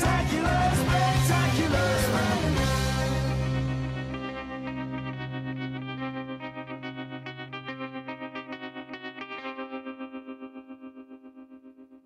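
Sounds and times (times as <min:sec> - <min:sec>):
pulsing electric guitar chord: 0:00.0 - 0:12.0.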